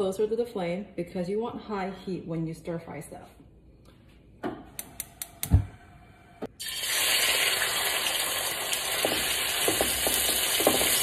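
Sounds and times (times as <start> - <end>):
meat sizzling in hot oil: 6.6 - 11.0.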